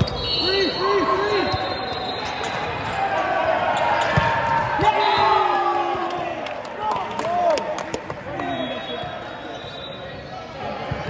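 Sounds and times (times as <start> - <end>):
sneakers squeaking on floor: 0.0 - 2.9
players shouting: 0.0 - 9.6.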